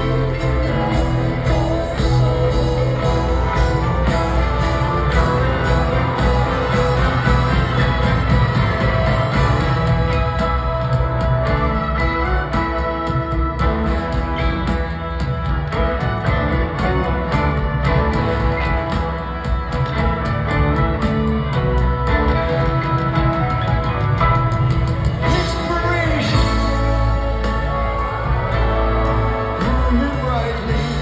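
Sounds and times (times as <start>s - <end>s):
drums: 0.0s - 31.0s
electric guitar: 0.0s - 31.0s
piano: 0.0s - 31.0s
rock band with orchestra: 0.0s - 31.0s
upright bass: 0.0s - 31.0s.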